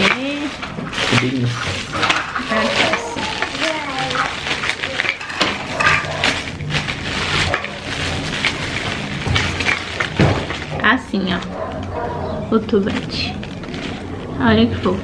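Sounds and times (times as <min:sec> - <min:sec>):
cellophane crinkling: 0:00.0 - 0:15.0.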